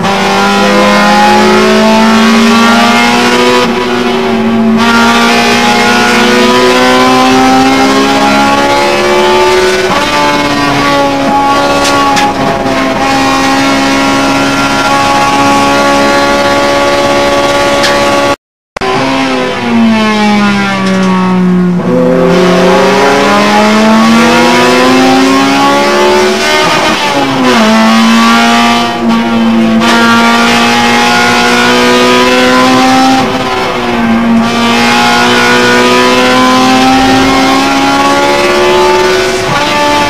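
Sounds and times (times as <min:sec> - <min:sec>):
car engine revving at racing pace: 0:00.0 - 0:40.0.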